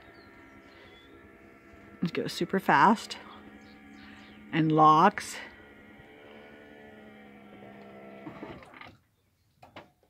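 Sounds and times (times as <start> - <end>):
awning motor humming: 0.0 - 9.0.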